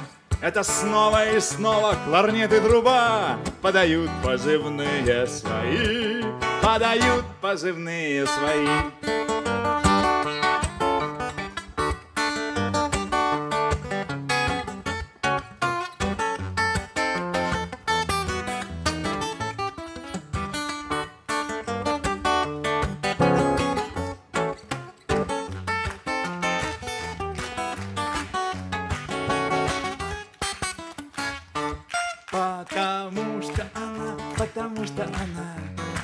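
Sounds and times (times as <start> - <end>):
acoustic guitar playing: 0.0 - 36.0.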